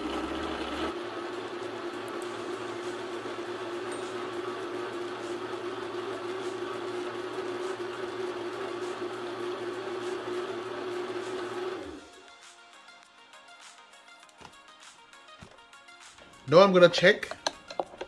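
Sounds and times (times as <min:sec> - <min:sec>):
blender running: 0:00.0 - 0:12.2.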